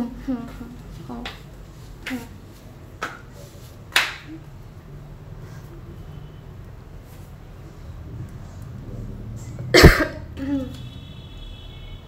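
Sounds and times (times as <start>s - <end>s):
person coughing: 9.7s - 10.8s.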